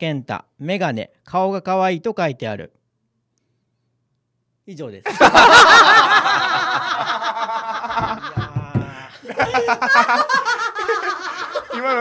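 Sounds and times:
people laughing loudly: 5.1s - 12.0s.

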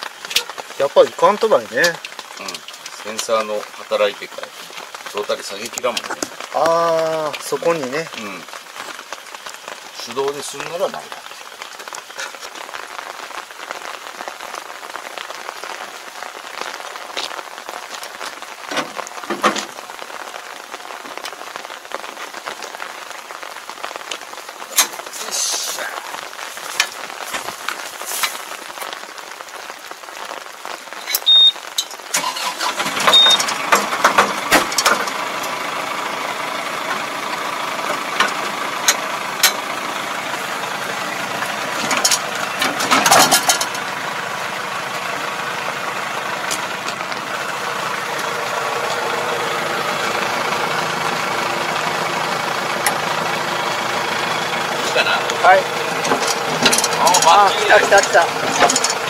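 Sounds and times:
tractor engine running: 31.0s - 59.0s.

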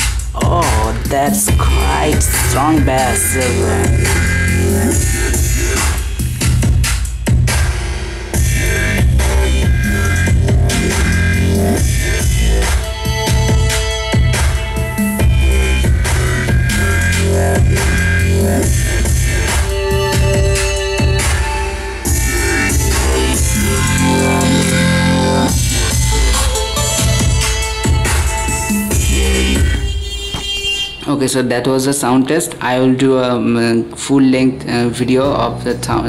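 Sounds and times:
electronic music with heavy bass: 0.0s - 33.7s.

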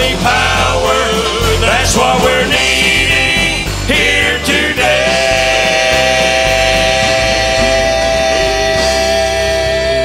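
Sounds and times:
instrumental accompaniment: 0.0s - 10.0s
men's vocal group singing: 0.0s - 10.0s
stepping bass line: 0.0s - 10.0s.

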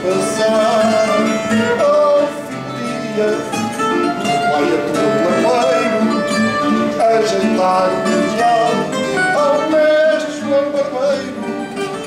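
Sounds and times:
man singing long held notes: 0.0s - 11.6s
plucked guitar: 0.0s - 12.0s.

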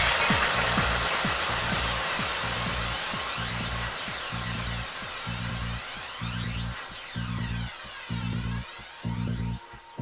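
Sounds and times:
kick drum: 0.0s - 10.0s
steady bassline: 0.0s - 10.0s
white noise wash: 0.0s - 10.0s.

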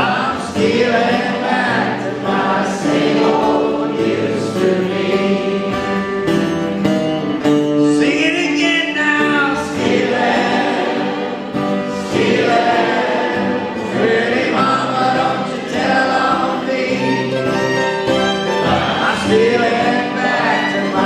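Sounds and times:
lead singer singing: 0.0s - 6.2s, 7.9s - 21.0s
crowd singing along: 0.0s - 6.9s, 8.4s - 21.0s
acoustic guitars strummed: 0.0s - 21.0s
fiddles bowed: 16.5s - 21.0s.

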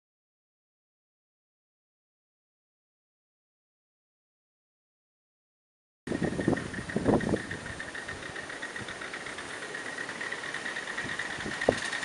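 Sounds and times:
model steam locomotive hissing: 6.1s - 12.0s
steam locomotive chuffs: 6.1s - 12.0s.

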